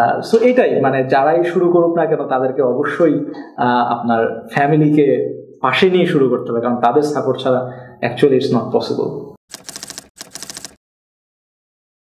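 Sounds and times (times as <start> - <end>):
man speaking: 0.0 - 9.3
typewriter key clicks: 9.5 - 10.8.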